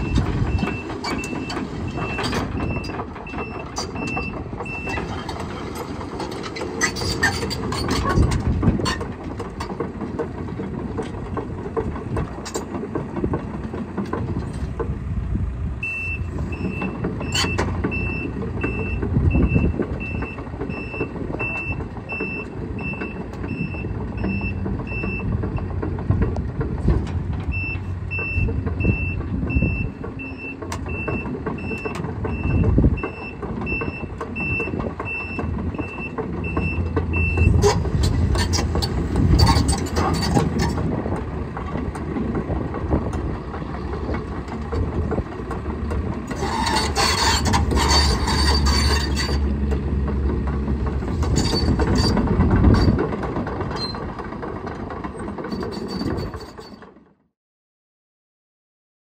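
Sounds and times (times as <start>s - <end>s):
metallic clanks from tracks: 0.0s - 15.1s, 15.8s - 57.2s
excavator diesel engine running: 0.0s - 57.3s
travel alarm beeping: 15.8s - 16.9s.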